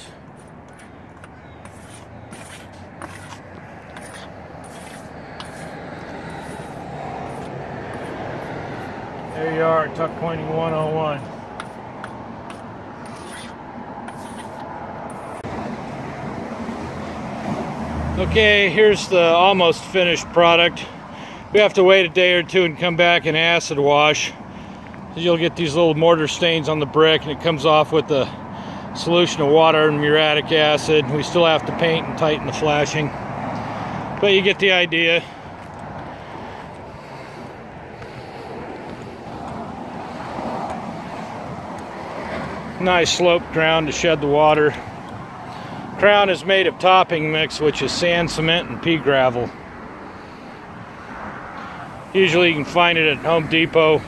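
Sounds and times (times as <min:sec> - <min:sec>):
mortar striker scraping brick joints: 0:00.0 - 0:15.5
background traffic hum: 0:00.0 - 0:54.0
outdoor background noise: 0:00.0 - 0:54.0.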